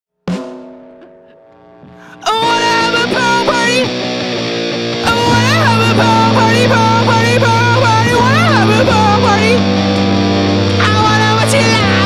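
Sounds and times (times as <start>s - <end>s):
rock band chord ringing: 0.3s - 12.0s.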